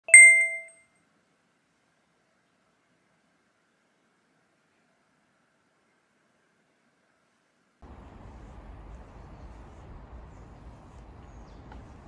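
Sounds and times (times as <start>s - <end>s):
bright bell ding: 0.0s - 0.7s.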